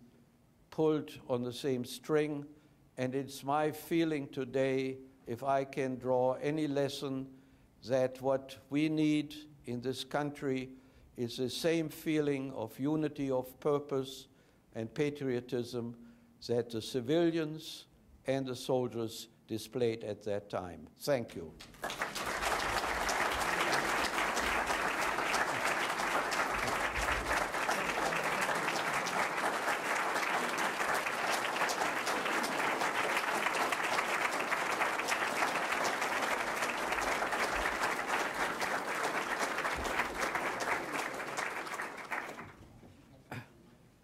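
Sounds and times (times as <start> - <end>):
audience applauding: 21.6 - 42.6.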